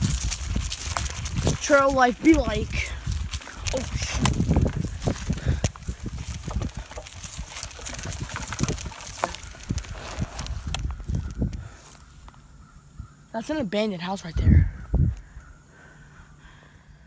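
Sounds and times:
mountain bike rattling on trail: 0.0 - 12.1.

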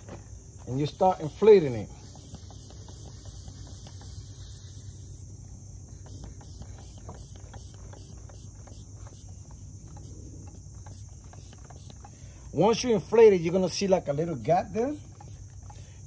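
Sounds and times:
insects chirring: 0.0 - 16.0.

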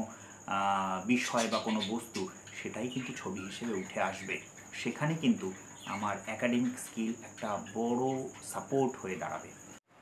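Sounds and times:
man talking: 0.0 - 9.6
steady high-pitched whine: 0.0 - 10.0.

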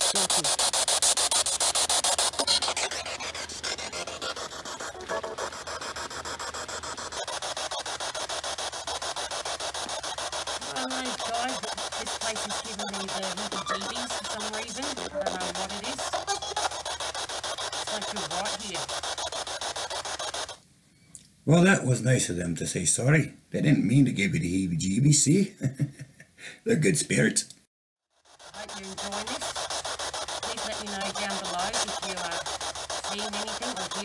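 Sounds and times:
broken voice fragments: 0.0 - 1.2, 1.8 - 5.7, 9.9 - 20.3
chopped radio static hiss: 0.0 - 20.7, 28.3 - 34.0.

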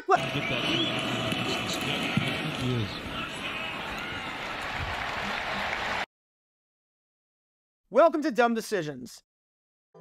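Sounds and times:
stadium crowd applauding and cheering: 0.2 - 6.1.

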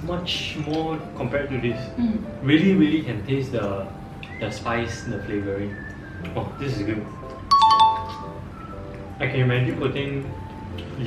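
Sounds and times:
quiet background music: 0.0 - 11.0
two-note chime: 7.5 - 8.4.

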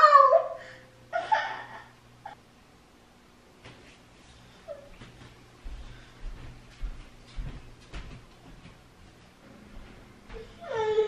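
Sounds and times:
toddler whimpering: 10.4 - 11.0.

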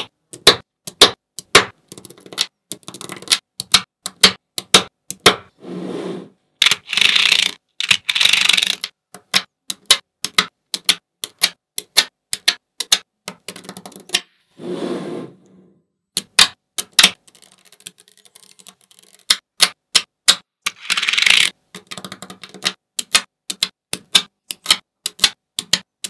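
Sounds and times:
magnet balls clicking: 6.6 - 14.2, 16.2 - 25.9
magnet balls rattling: 20.7 - 22.7.

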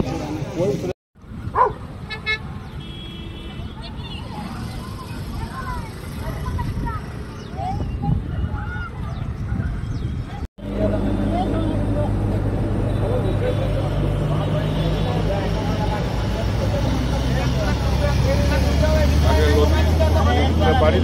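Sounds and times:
people talking: 3.6 - 21.0.

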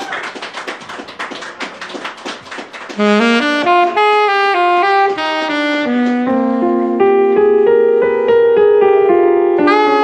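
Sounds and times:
hand claps keeping a beat: 0.0 - 4.5, 6.0 - 6.3
saxophone: 2.9 - 7.2, 9.6 - 10.0.

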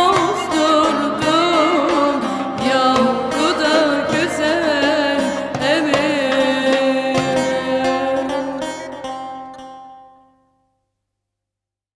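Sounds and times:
plucked strings ringing: 0.0 - 10.5.

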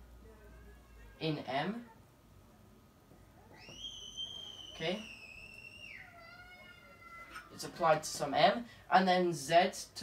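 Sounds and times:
thin high whistling tone: 3.6 - 6.0.

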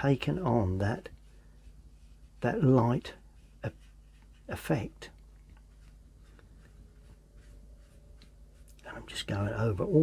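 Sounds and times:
low steady hum: 0.0 - 10.0
paintbrush brushing on paper: 0.0 - 10.0.

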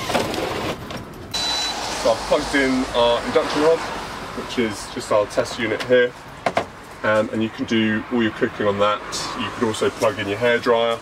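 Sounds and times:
thin high whine: 1.3 - 3.6.

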